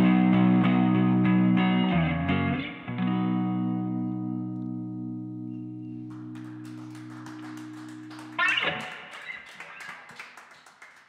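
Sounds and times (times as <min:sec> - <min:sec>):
electric guitar chord ringing: 0:00.0 - 0:06.3.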